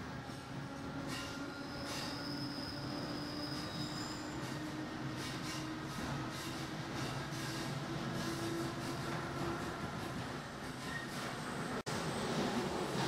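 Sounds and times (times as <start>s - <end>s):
train wheels rumbling on rails: 0.0s - 13.0s
high thin wheel squeal: 1.1s - 4.6s.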